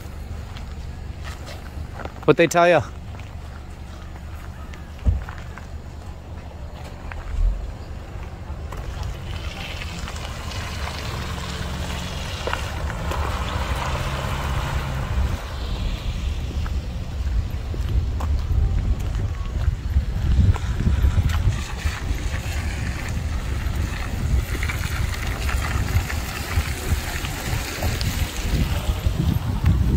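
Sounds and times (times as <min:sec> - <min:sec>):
wind buffeting microphone: 0:12.2 - 0:29.9.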